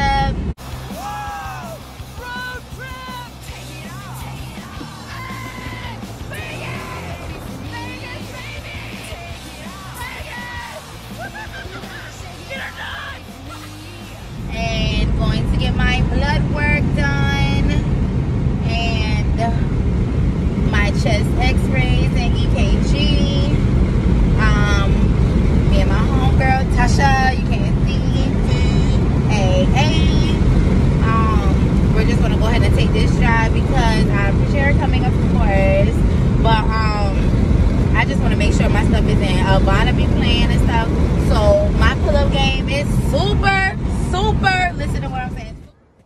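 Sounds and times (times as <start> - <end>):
woman talking: 0.0 - 0.4, 2.2 - 17.9, 18.6 - 19.7, 20.7 - 23.6, 24.4 - 25.1, 25.7 - 37.3, 37.9 - 45.7
car cabin road rumble: 0.0 - 46.0.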